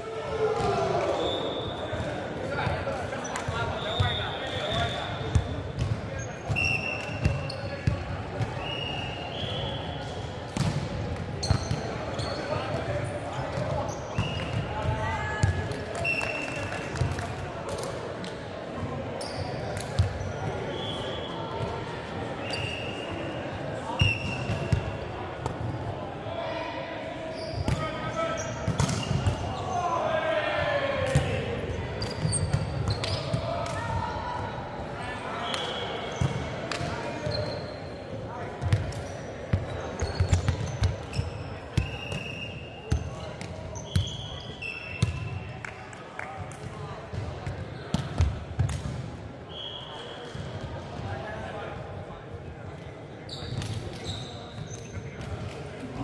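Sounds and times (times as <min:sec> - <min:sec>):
players' voices: 0:00.0 - 0:56.0
sneakers squeaking on wood: 0:11.4 - 0:12.5, 0:39.8 - 0:42.2, 0:43.8 - 0:45.2, 0:53.3 - 0:54.8.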